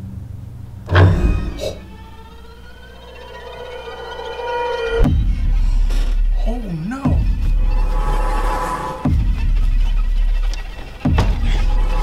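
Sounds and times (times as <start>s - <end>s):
deep bass drone: 0.0s - 12.0s
sudden low hit: 0.8s - 3.1s.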